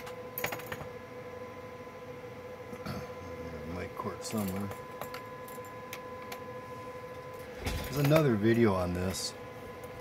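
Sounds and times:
faint electronic whine: 0:00.0 - 0:10.0.

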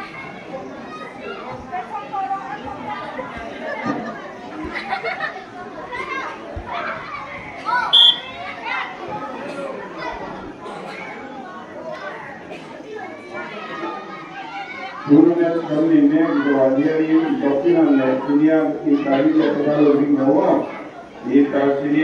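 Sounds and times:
short loud high-pitched sound: 0:08.0 - 0:08.3.

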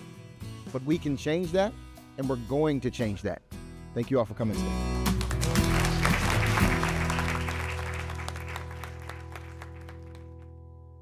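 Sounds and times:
outro music with held notes: 0:04.6 - 0:11.0
audience applause: 0:05.2 - 0:10.5.

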